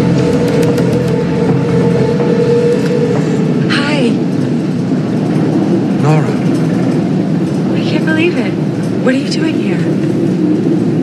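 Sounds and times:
metro train rumbling: 0:00.0 - 0:11.0.

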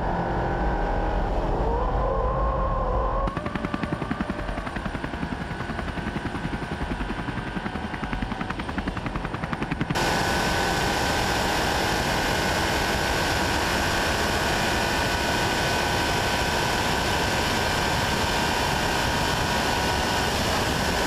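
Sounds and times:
car engine roaring at full speed: 0:00.0 - 0:21.0
engine whine: 0:00.0 - 0:21.0
rushing wind: 0:00.0 - 0:21.0.

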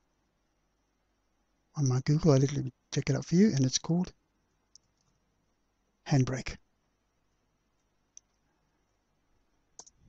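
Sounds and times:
computer mouse clicks: 0:09.8 - 0:10.0.

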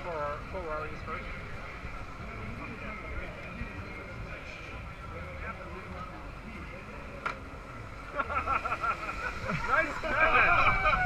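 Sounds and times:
electric go-kart motors whining: 0:00.0 - 0:11.0
steady background noise: 0:00.0 - 0:11.0.

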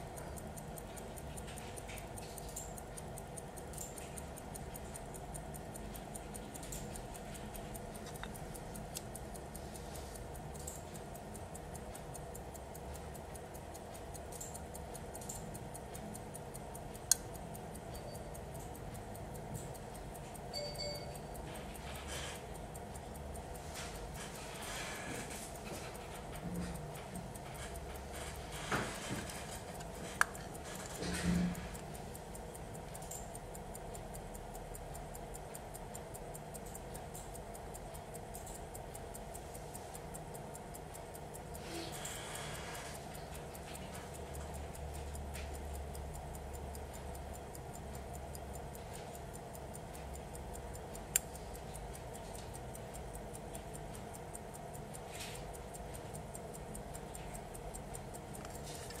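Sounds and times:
pocket watch ticking: 0:00.0 - 0:59.0
sharp clicks: 0:00.0 - 0:59.0.

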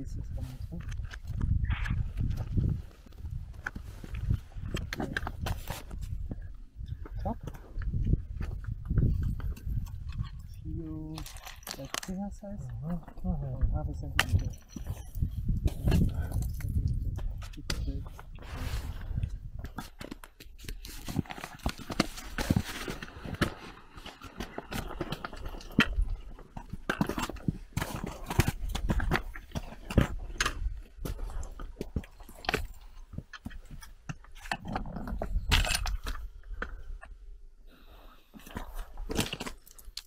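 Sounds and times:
footsteps on loose rock scree: 0:07.3 - 0:12.1, 0:14.2 - 0:37.1.

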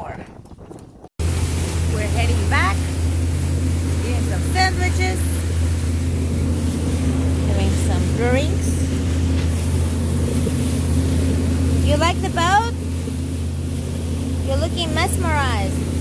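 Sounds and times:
rush of wake and wind: 0:00.0 - 0:16.0
outboard motor running: 0:00.8 - 0:16.0.

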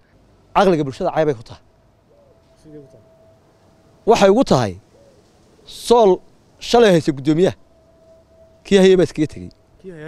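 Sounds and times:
man speaking: 0:00.6 - 0:03.1, 0:08.7 - 0:10.0
faint low hooting bird calls: 0:01.3 - 0:10.0.

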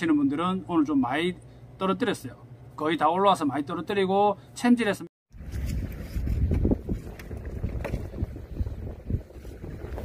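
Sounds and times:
wind buffeting microphone: 0:05.3 - 0:10.0.

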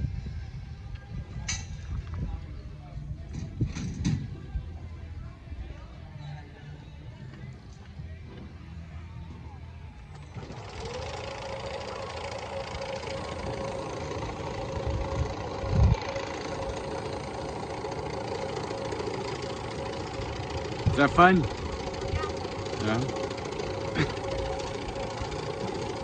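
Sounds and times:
sled whirring rumble on rail: 0:00.0 - 0:05.3, 0:07.2 - 0:26.0.

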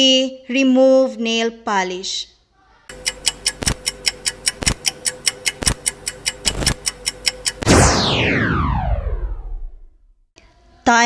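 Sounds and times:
countdown timer ticking: 0:02.9 - 0:08.2
tone sweeping down in pitch: 0:07.6 - 0:10.0.

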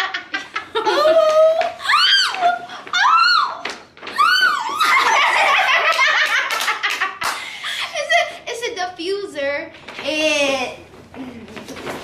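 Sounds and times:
woman squealing excitedly: 0:00.8 - 0:05.3
laughter: 0:04.9 - 0:08.2.

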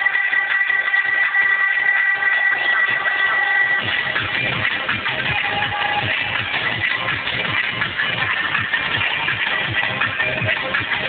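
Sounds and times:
distorted electronic dance music: 0:00.0 - 0:11.0.

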